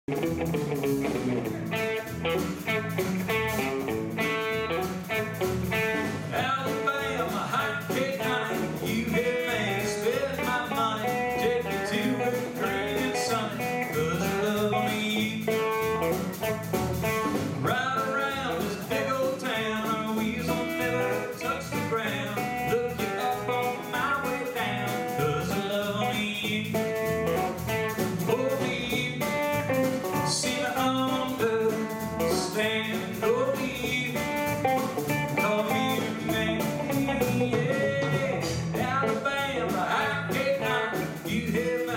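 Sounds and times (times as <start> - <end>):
live country band playing: 0.0 - 41.9
person singing: 6.3 - 16.2, 17.6 - 41.9.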